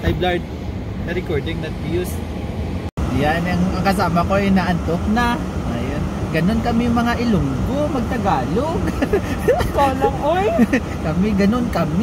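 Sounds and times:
man talking: 0:00.0 - 0:00.4, 0:01.0 - 0:02.2, 0:03.0 - 0:12.0.

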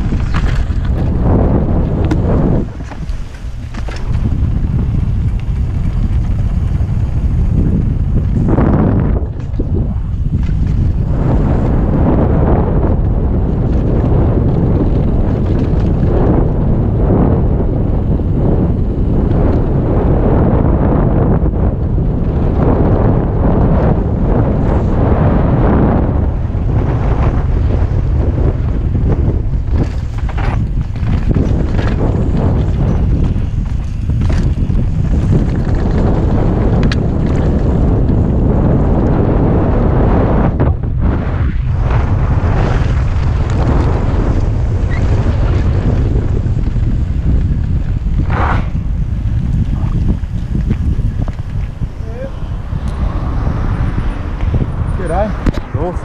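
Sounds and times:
bike knocks and rattles: 0:00.0 - 0:25.6, 0:27.1 - 0:39.8, 0:41.8 - 0:52.0
wind buffeting microphone: 0:00.0 - 0:56.0.

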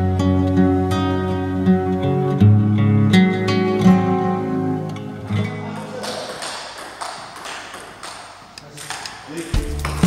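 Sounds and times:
table tennis balls clicking: 0:05.8 - 0:10.0
music with heavy bass: 0:09.6 - 0:10.0.

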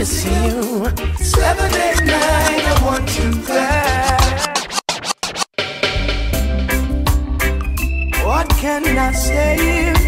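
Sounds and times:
reggae music with heavy bass: 0:00.0 - 0:10.0
vinyl record scratching: 0:01.4 - 0:05.6.

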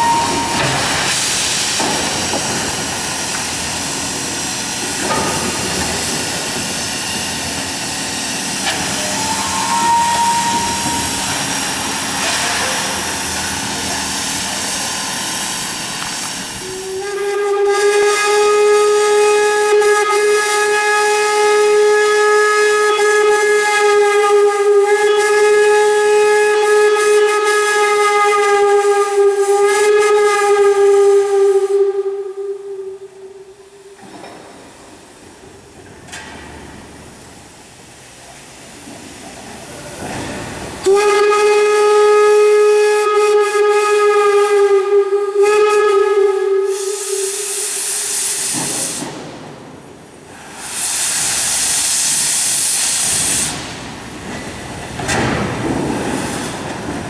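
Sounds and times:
steam locomotive whistle: 0:00.0 - 0:01.2, 0:08.6 - 0:13.8, 0:16.4 - 0:34.5, 0:40.8 - 0:49.2
hiss of steam: 0:00.0 - 0:32.0, 0:33.8 - 0:57.0.

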